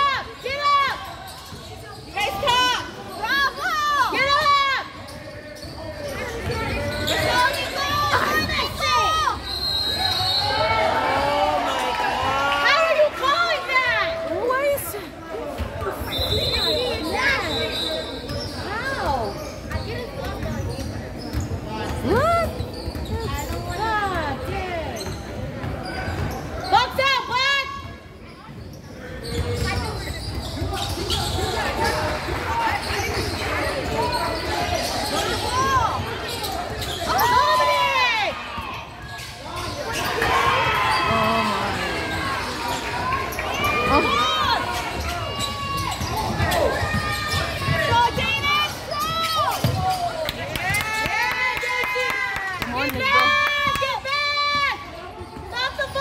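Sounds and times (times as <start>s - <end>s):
voices of players and spectators: 0.0s - 56.0s
sneakers squeaking on court: 1.0s - 11.2s, 15.4s - 27.0s, 27.8s - 50.8s.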